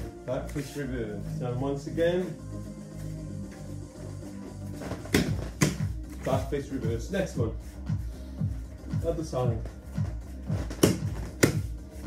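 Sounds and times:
workout music with steady beat: 0.0 - 12.0
sharp slaps: 5.0 - 5.9, 10.7 - 11.7.

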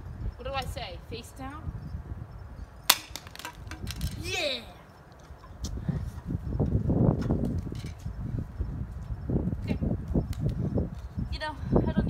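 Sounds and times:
wind rumble on microphone: 0.0 - 12.0
phone hitting concrete: 2.9 - 4.2.

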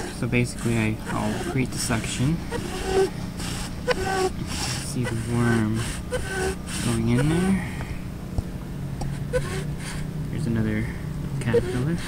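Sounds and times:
underwater rubbing and scraping: 0.0 - 7.6, 9.1 - 10.0, 11.4 - 12.0
steady low hum: 0.0 - 12.0.

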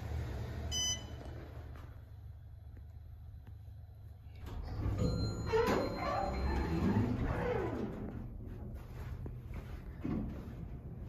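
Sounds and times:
whine of door mechanism: 4.4 - 8.1
elevator doors sliding open: 4.4 - 8.6.

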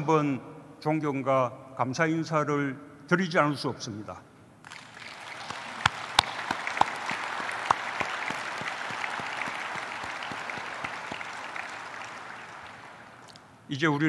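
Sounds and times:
audience applauding: 4.6 - 13.5
sharp single claps: 4.7 - 13.6.

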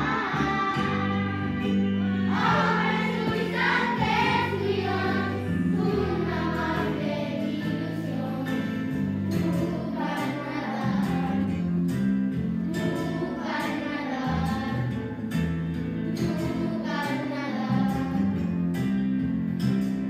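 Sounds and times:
children singing a carol: 0.0 - 11.7, 12.7 - 15.2, 16.0 - 18.4
instrumental accompaniment: 0.0 - 20.0.

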